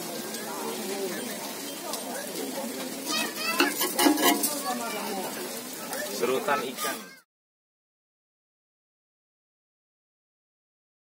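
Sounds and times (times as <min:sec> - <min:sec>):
griddle sizzling: 0:00.0 - 0:07.2
scraping clicks against pan: 0:03.6 - 0:04.6.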